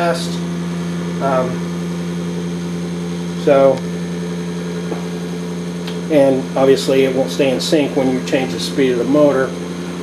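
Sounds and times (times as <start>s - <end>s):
pulse motor humming: 0.0s - 10.0s.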